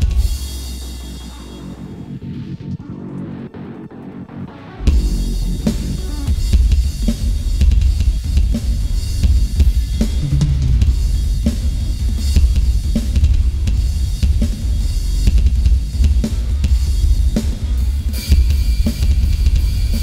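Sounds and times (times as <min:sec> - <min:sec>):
cymbal crashes: 0:04.8 - 0:07.4
double bass drum strokes: 0:04.8 - 0:17.2.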